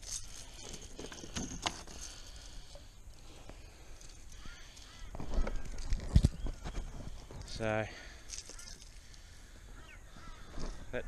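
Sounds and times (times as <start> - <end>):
man talking: 7.5 - 8.1
faint bird chirps: 8.4 - 11.0.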